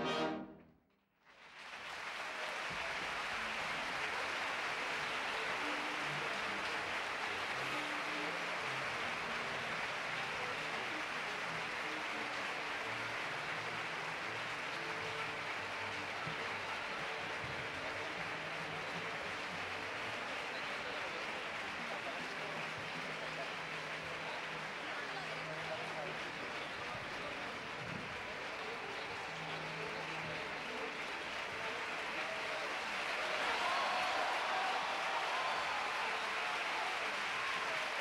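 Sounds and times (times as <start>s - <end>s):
audience applauding: 1.2s - 38.0s.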